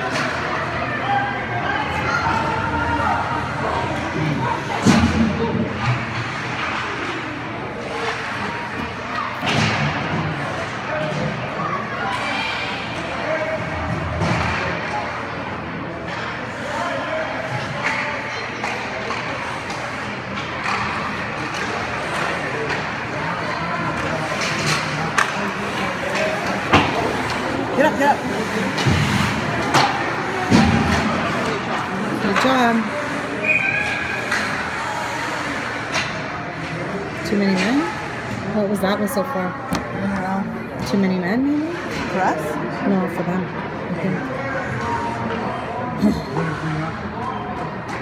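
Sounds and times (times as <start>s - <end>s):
spectators' voices: 0.0s - 48.0s
puck and sticks knocking boards: 23.9s - 27.6s.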